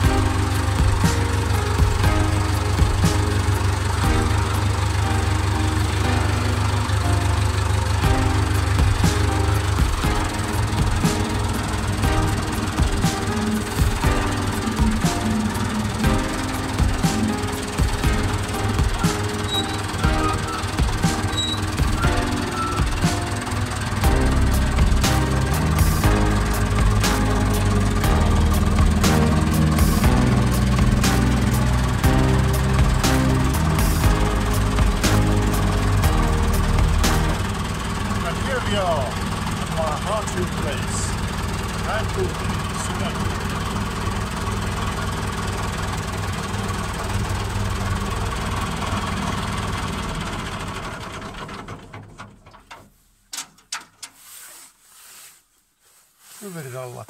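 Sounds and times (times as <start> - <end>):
background music with steady beat: 0.0 - 46.2
tractor engine running: 0.0 - 54.0.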